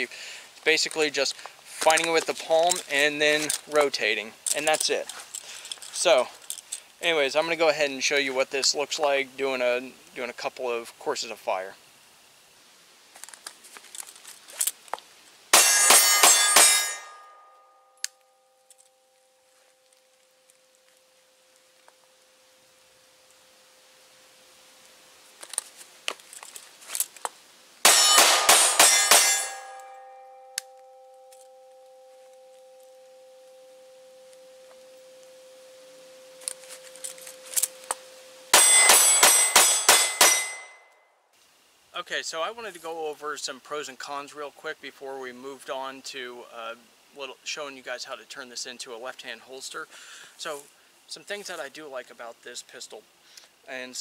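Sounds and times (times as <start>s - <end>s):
steel targets clanging and ringing: 15.5s - 18.0s, 27.8s - 33.0s, 36.4s - 40.9s.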